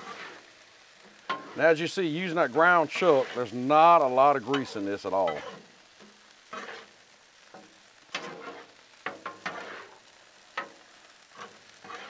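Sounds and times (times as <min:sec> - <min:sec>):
metal spatulas scraping griddle: 0:00.0 - 0:00.5, 0:01.2 - 0:01.6, 0:02.6 - 0:03.6, 0:04.5 - 0:10.0, 0:10.6 - 0:12.0
faint sizzle: 0:00.0 - 0:12.0.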